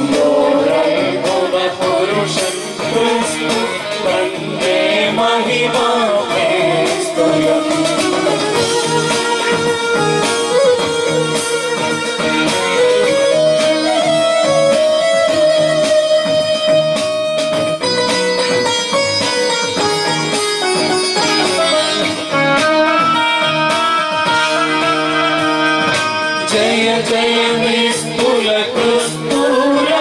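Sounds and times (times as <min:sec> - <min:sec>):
electronic keyboard melody: 0:05.2 - 0:27.8.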